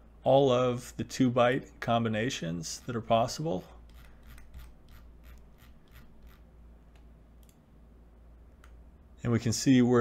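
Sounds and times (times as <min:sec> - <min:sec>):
low steady hum: 0:00.0 - 0:10.0
mouse scroll wheel ticking: 0:03.9 - 0:06.4.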